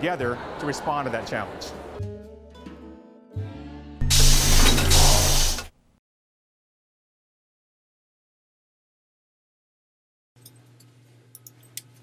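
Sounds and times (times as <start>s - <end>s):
hissing burst of noise: 4.0s - 5.8s.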